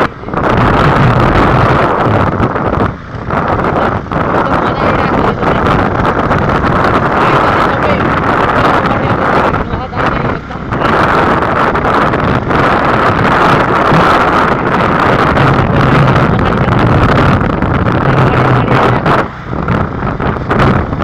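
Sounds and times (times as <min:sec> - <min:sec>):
vehicle engine noise: 0:00.0 - 0:21.0
wind rushing over microphone: 0:00.0 - 0:21.0.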